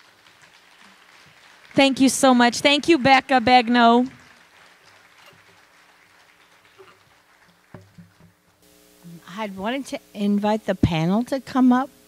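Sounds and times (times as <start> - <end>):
light audience applause: 0.0 - 8.6
knock: 7.7 - 8.4.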